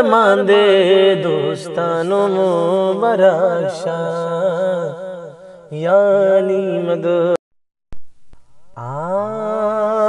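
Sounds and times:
man singing a devotional chant: 0:00.0 - 0:07.4, 0:08.7 - 0:10.0.

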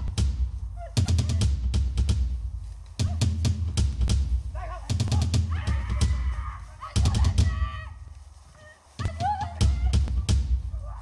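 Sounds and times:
sharp hits and thuds: 0:00.0 - 0:06.3
dramatic music with heavy beat: 0:00.0 - 0:08.0, 0:09.0 - 0:11.0.

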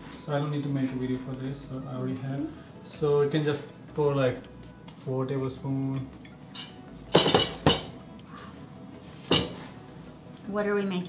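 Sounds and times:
metal cups clinking: 0:06.2 - 0:08.0, 0:09.2 - 0:09.6.

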